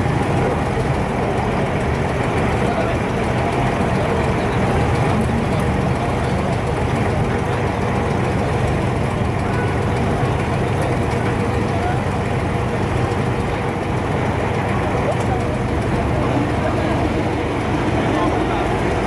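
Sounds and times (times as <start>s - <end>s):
boat diesel engine droning: 0.0s - 19.0s
passengers talking: 0.0s - 19.0s.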